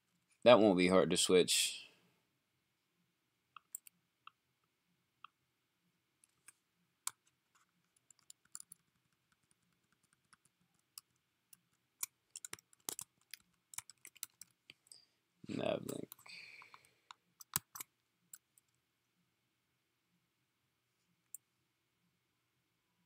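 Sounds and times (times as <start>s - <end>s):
wordless voice sound: 0.4s - 2.0s, 15.4s - 16.8s
keyboard typing: 3.5s - 4.4s, 6.2s - 14.8s, 15.7s - 18.7s.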